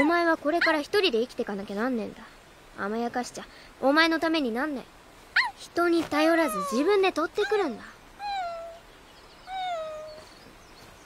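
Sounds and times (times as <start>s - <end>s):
puppy whining: 8.2s - 8.8s, 9.4s - 10.4s.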